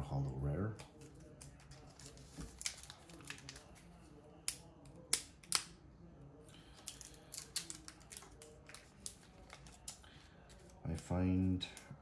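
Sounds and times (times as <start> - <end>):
trading cards and packaging clicking: 6.8 - 12.0.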